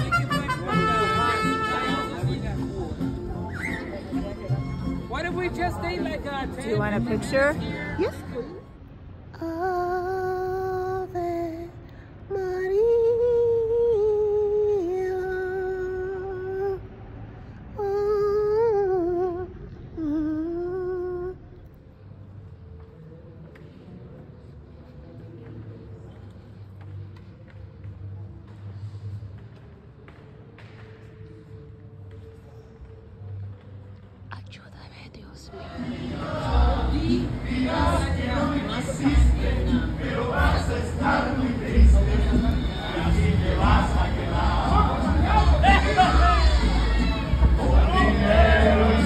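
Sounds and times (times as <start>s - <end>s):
woman humming slow melody: 9.4s - 16.9s, 17.8s - 21.7s
faint whispered voices: 21.3s - 48.2s.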